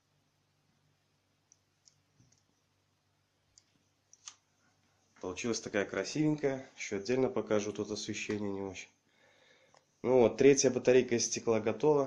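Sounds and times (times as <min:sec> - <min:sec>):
faint clicks: 0:01.4 - 0:02.5, 0:03.5 - 0:04.4.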